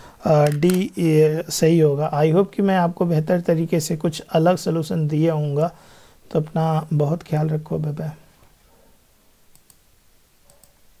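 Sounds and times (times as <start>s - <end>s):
faint mouse clicks: 9.5s - 9.8s, 10.4s - 10.8s.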